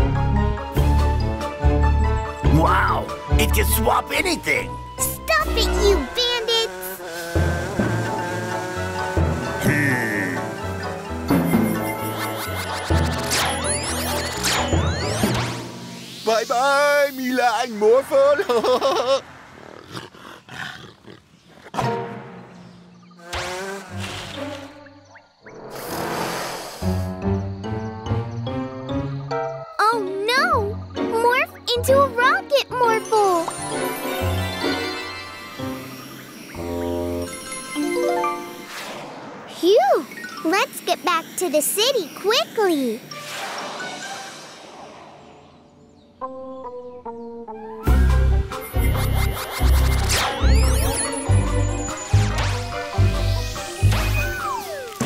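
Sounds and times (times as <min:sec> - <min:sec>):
cartoon background music: 0:00.0 - 0:18.2, 0:23.0 - 0:44.4, 0:46.2 - 0:55.0
cartoon tiger roar: 0:05.7 - 0:10.6
cartoon whoosh hiss: 0:25.7 - 0:27.2, 0:38.6 - 0:45.3.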